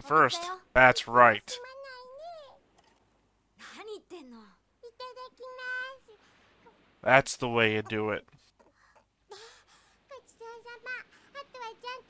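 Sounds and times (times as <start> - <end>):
young girl's high voice: 0.2 - 0.7, 1.5 - 2.6, 3.7 - 6.2, 10.1 - 12.0
another voice speaking: 7.0 - 8.2.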